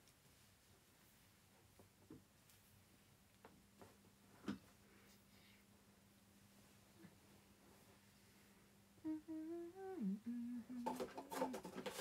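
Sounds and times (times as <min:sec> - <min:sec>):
woman humming a tune: 0:09.0 - 0:11.6
clicks and rustles: 0:10.8 - 0:12.0.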